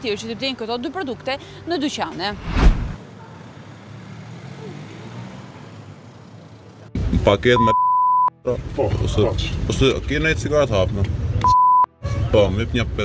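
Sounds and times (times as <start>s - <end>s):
loud deep thump: 2.4s - 3.0s.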